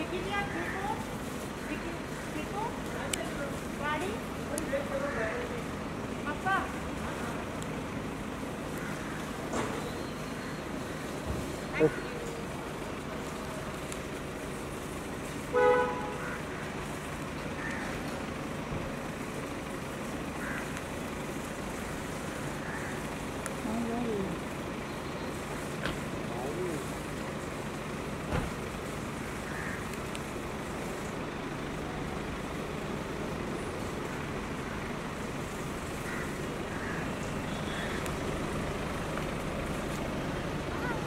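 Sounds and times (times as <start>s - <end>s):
car engine running nearby: 0.0s - 41.0s
street traffic noise: 0.0s - 41.0s
faint voices: 21.8s - 27.8s, 39.7s - 41.0s.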